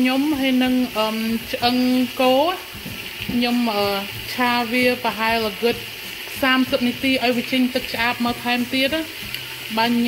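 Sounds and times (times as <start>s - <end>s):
meat sizzling in a pot: 0.0s - 10.0s
wooden spoon stirring: 2.6s - 4.4s.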